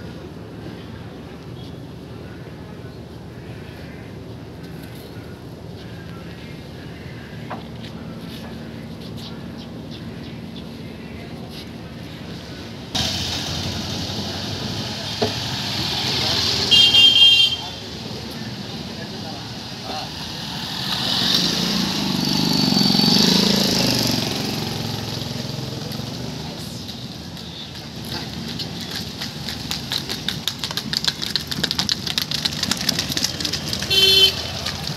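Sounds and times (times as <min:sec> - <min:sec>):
motor vehicle passing: 0:11.4 - 0:26.8, 0:27.8 - 0:34.9
hooves and cart clattering: 0:25.2 - 0:34.9.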